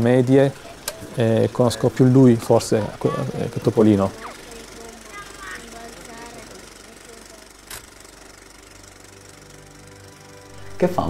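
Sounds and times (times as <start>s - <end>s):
faint voices: 0.0s - 7.6s.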